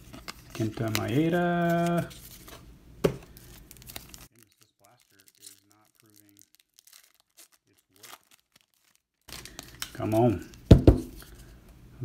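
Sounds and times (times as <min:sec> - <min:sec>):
wrapper crinkling: 0:00.0 - 0:02.6, 0:03.2 - 0:11.4
wrapper tearing open: 0:03.3 - 0:10.7.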